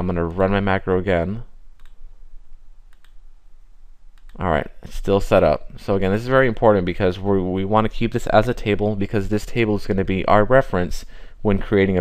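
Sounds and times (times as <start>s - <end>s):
faint background hiss: 0.0s - 12.0s
computer mouse clicks: 1.8s - 2.0s, 2.9s - 3.2s, 4.1s - 4.4s.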